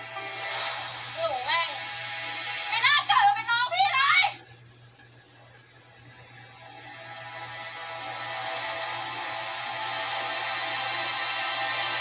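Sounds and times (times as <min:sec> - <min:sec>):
drama background music: 0:00.0 - 0:03.7, 0:06.6 - 0:12.0.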